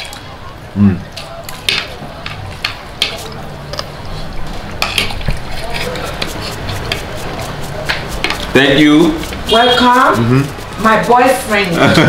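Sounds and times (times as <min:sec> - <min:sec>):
faint voices murmuring: 0:00.0 - 0:12.0
metal spoon scraping a plate: 0:04.2 - 0:12.0.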